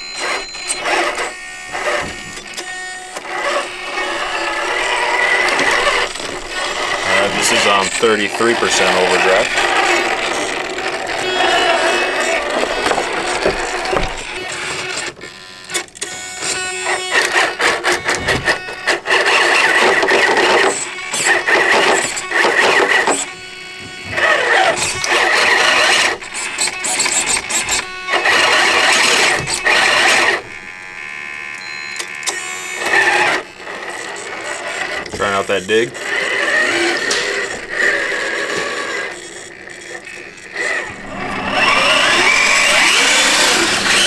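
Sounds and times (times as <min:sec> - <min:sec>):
toy truck motor whining: 0:00.0 - 0:44.0.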